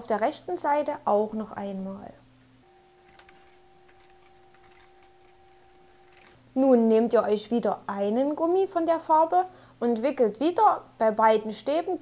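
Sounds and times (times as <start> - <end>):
faint two-pitch hum: 0.0 - 12.0.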